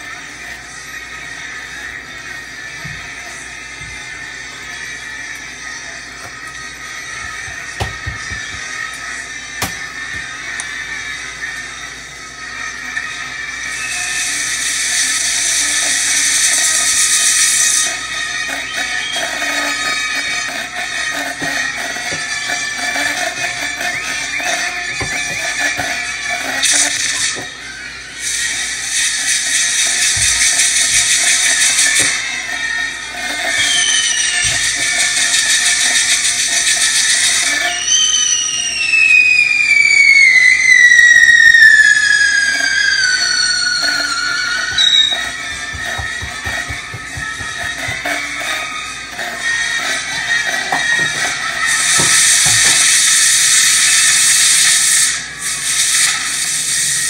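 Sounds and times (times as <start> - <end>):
music: 0.0 - 57.0
whistling firework sliding down: 12.6 - 32.3, 33.1 - 57.0
firework spark fountains hissing: 13.5 - 57.0.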